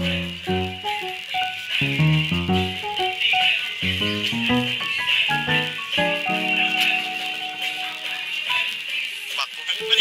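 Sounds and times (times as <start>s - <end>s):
upbeat dance music: 0.0s - 8.0s.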